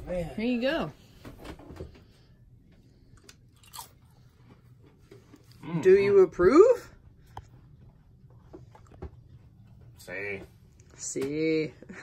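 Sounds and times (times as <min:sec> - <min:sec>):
cracker crunching: 0:03.1 - 0:05.5.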